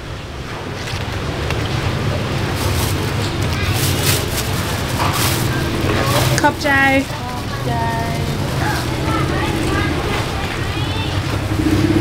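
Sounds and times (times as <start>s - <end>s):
low engine rumble: 0.0s - 12.0s
plastic bag crinkling: 0.8s - 10.6s.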